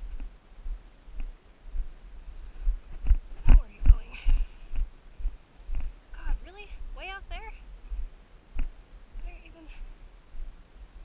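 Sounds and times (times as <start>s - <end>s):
footsteps on rough ground: 0.0s - 10.6s.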